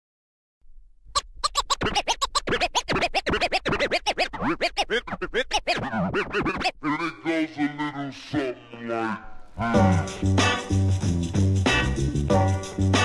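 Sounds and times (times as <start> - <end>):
turntable scratching: 1.2 - 8.0.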